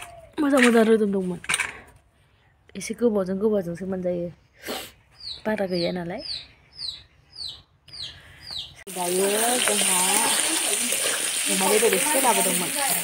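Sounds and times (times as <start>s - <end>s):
bird chirping: 5.0s - 8.9s
food sizzling in a wok: 8.9s - 13.0s.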